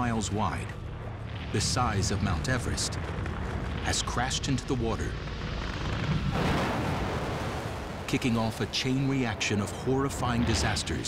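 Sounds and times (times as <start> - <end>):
deep rumble: 0.0 - 11.0
explosion blast: 1.0 - 8.1.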